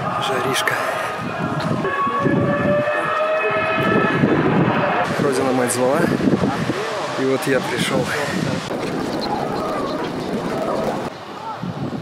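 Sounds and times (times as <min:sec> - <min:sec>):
outdoor noise: 0:00.0 - 0:12.0.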